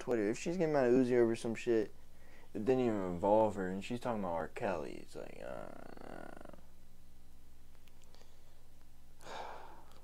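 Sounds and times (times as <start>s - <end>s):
low steady hum: 0.0s - 10.0s
person sighing: 5.6s - 6.6s, 9.2s - 10.0s.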